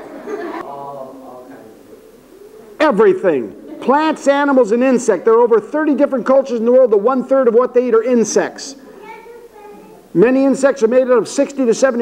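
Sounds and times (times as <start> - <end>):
man speaking: 2.8 - 8.8, 10.1 - 12.0.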